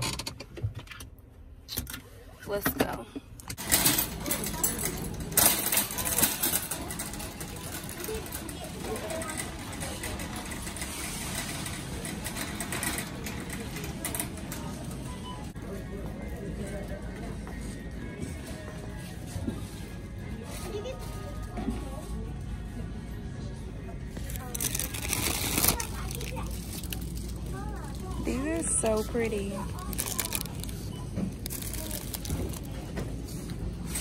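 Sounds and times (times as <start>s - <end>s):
shopping cart rattling: 3.6s - 15.5s, 24.2s - 34.0s.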